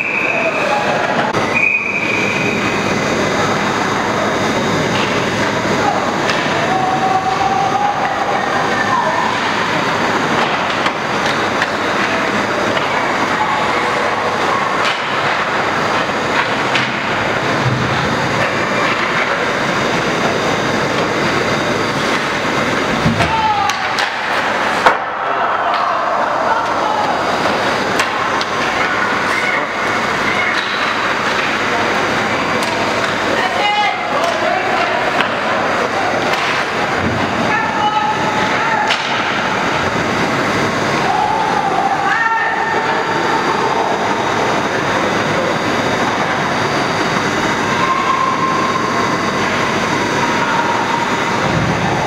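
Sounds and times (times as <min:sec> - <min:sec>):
noisy ice rink background: 0:00.0 - 0:52.0.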